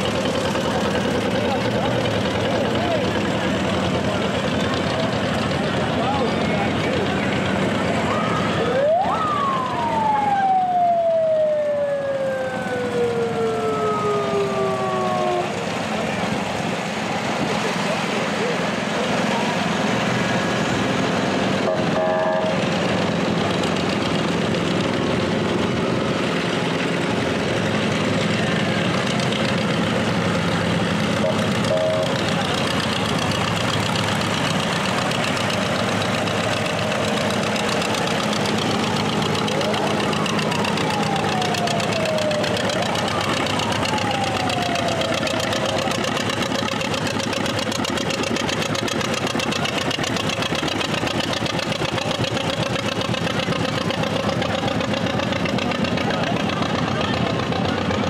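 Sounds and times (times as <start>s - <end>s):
tractor engines running: 0.0s - 58.0s.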